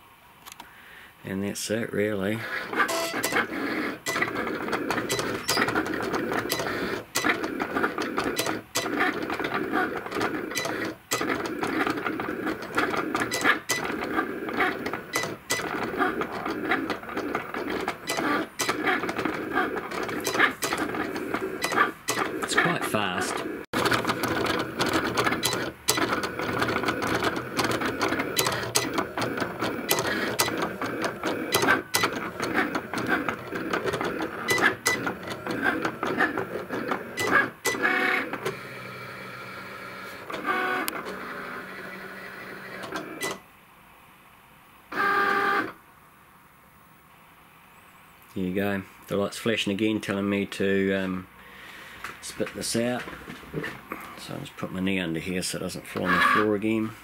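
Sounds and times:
cutting machine motors whirring: 2.4 - 43.4
small machine clicks: 2.6 - 22.4.

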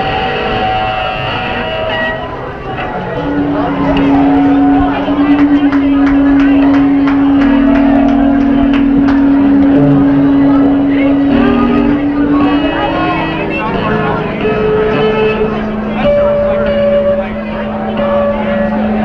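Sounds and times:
distorted electric guitar feedback: 0.0 - 19.0.

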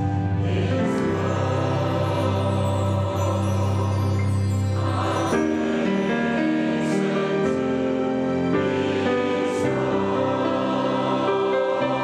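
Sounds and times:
choir singing a hymn in harmony: 0.0 - 12.0.

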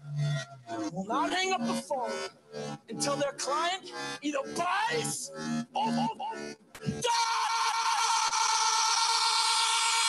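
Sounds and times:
man speaking: 2.9 - 6.4.

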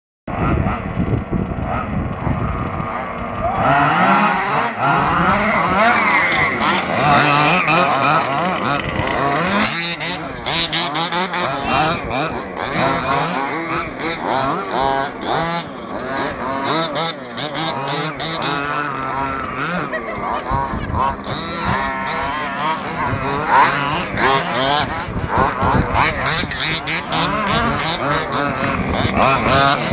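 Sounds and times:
small two-stroke engines revving: 0.3 - 29.9.

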